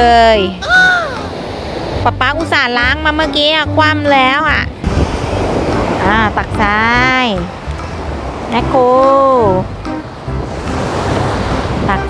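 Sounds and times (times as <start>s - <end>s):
sea surf washing on beach: 0.6s - 12.0s
wind on microphone: 0.6s - 12.0s.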